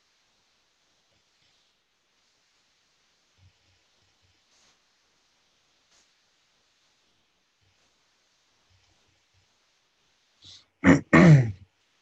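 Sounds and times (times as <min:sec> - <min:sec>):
room-tone hiss: 0:00.0 - 0:12.0.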